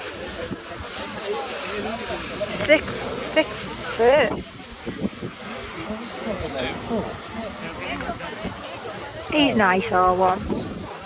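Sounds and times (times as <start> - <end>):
people talking: 0.0 - 11.0
wind on microphone: 2.2 - 11.0.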